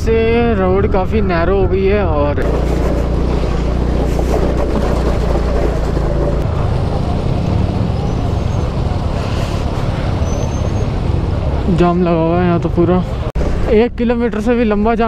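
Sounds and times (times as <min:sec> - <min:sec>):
engine rumbling: 0:00.0 - 0:15.0.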